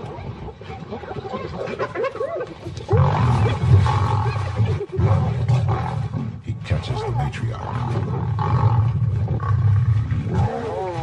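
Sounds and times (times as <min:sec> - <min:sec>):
deep hyena growling: 0:00.0 - 0:11.0.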